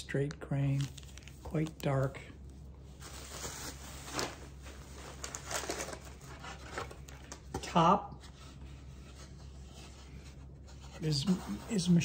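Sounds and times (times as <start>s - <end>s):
bubble wrap and paper crinkling: 0.4s - 7.6s.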